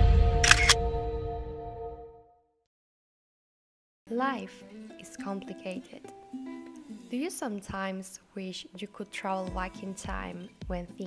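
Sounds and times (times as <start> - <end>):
camera shutter clicks: 0.4 - 0.8.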